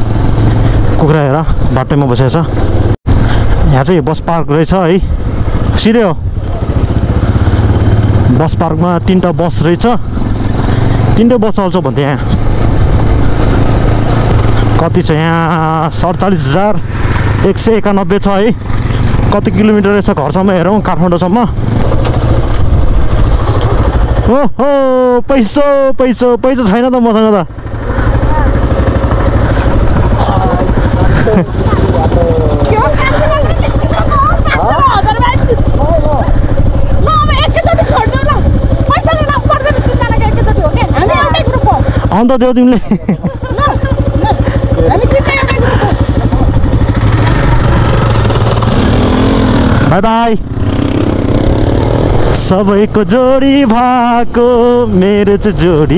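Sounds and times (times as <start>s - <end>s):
motorcycle engine running: 0.0s - 55.9s
road noise on dirt track: 0.0s - 55.9s
man talking: 30.1s - 33.2s, 52.3s - 55.9s.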